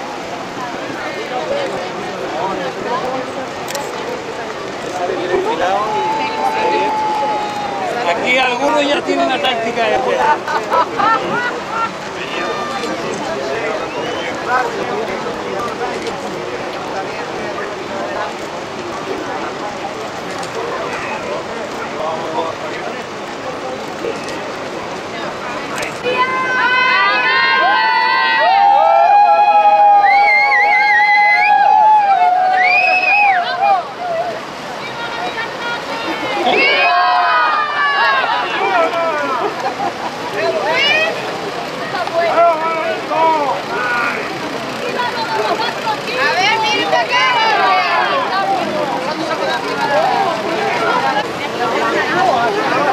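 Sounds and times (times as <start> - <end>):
crowd chattering and calling out: 0.0 - 52.9
swimmers splashing water: 0.0 - 52.9
people talking indistinctly: 33.4 - 52.9.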